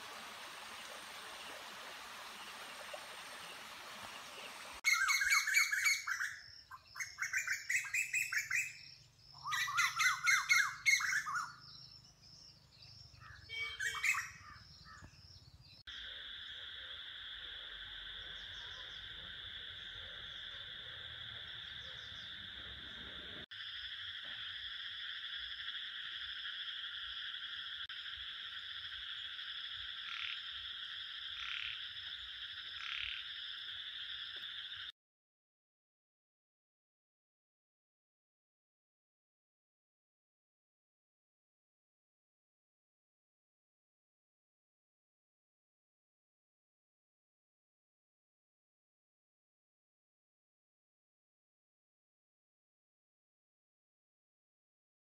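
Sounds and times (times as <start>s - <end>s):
stream running over stones: 0.0s - 4.8s
insect chorus: 0.1s - 34.9s
birds calling rapidly: 2.2s - 15.8s
frog croaking: 15.9s - 34.9s.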